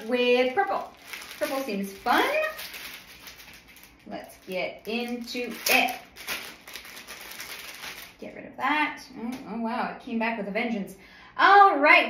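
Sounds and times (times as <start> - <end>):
packaging rustling: 0.4 - 8.2.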